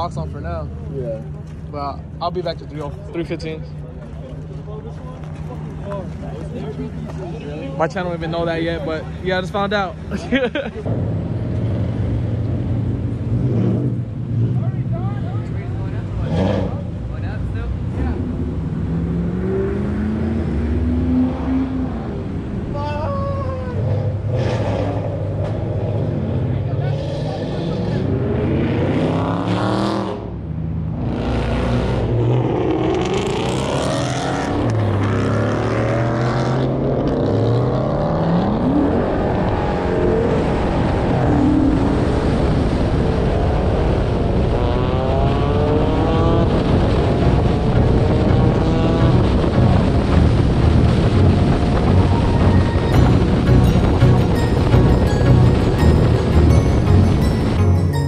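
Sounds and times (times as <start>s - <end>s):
car engines accelerating and revving: 0.0s - 58.0s.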